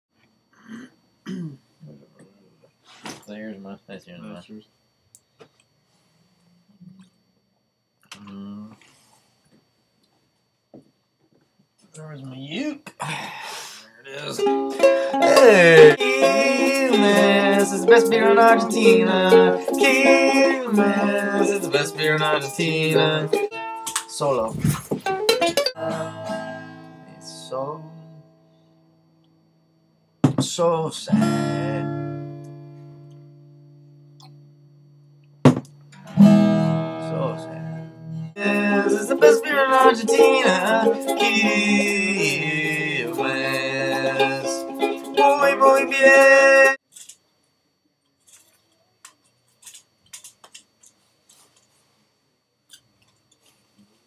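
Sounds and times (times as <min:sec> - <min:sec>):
man clearing throat and coughing: 0:00.6 - 0:01.7
acoustic guitar notes ringing: 0:14.2 - 0:29.0, 0:31.1 - 0:34.6, 0:35.4 - 0:46.8.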